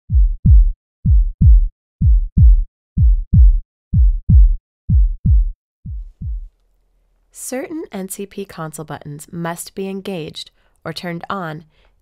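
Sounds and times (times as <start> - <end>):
heartbeat thumps: 0.1 - 6.6.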